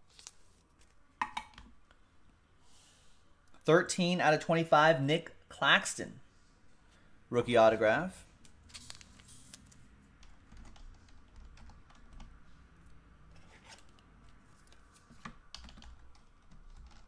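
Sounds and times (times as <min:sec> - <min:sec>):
small objects clicking and tapping: 0:01.2 - 0:01.8.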